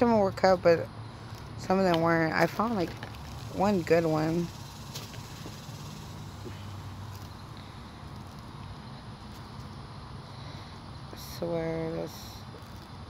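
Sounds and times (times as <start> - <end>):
faint hum: 0.0 - 13.0
low background rumble: 0.0 - 13.0.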